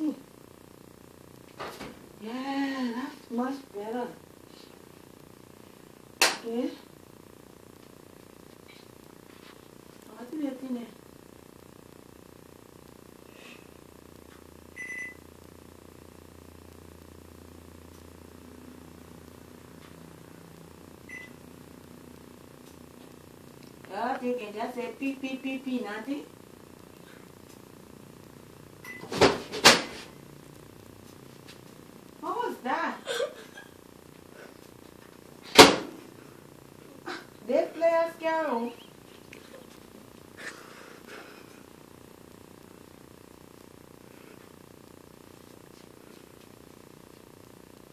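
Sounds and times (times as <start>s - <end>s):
low steady hum: 0.0s - 47.9s
microwave keypad beeps: 14.8s - 15.2s, 21.1s - 21.4s, 28.8s - 29.1s.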